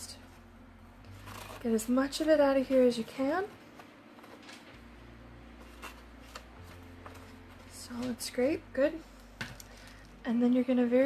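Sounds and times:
spoon scraping foil bowl: 1.1s - 2.2s, 5.6s - 7.1s.

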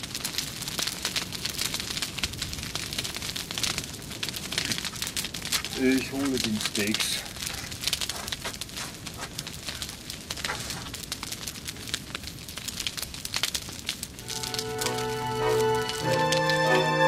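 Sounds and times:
dense irregular crackling: 0.0s - 17.0s
music with organ-like chords: 14.2s - 17.0s.

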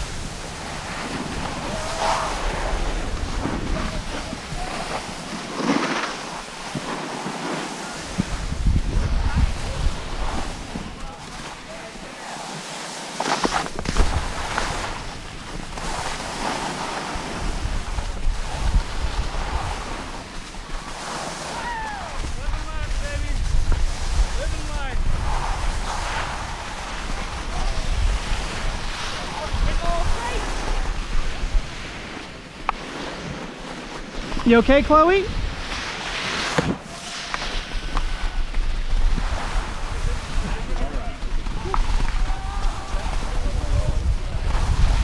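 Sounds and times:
wind buffeting microphone: 0.0s - 6.9s, 7.8s - 12.0s, 13.6s - 33.5s, 34.1s - 45.0s
skis scraping over snow: 0.0s - 45.0s.

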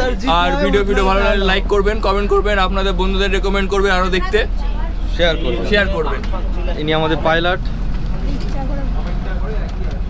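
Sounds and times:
man's voice: 0.0s - 4.4s
boat engine droning: 0.0s - 10.0s.

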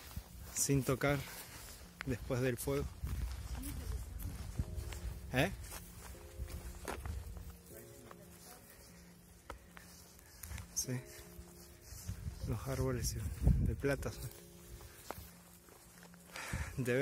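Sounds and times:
footsteps on dirt trail: 0.0s - 17.0s
wind rumble on microphone: 2.1s - 5.7s, 11.9s - 14.3s.

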